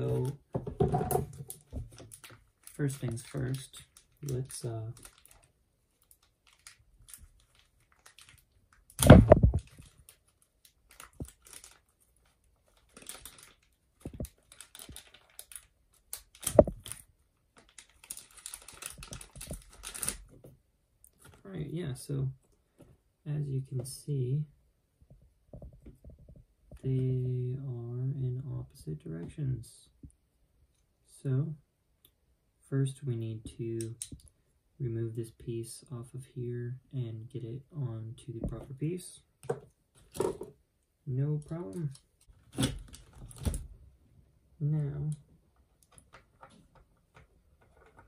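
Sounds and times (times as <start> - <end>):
plastic parts clicking and rustling: 0.0 - 21.4, 41.5 - 43.7, 45.6 - 48.0.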